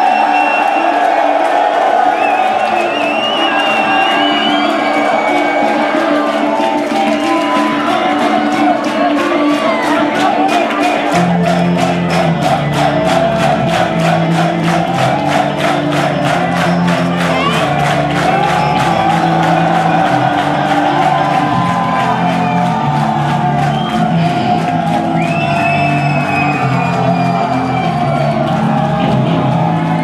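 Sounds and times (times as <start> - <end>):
crowd cheering: 0.0 - 30.0.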